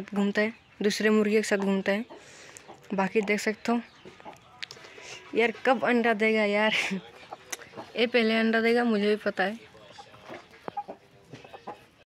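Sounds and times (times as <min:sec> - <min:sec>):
chickens clucking softly: 0:01.6 - 0:08.1, 0:09.7 - 0:12.0.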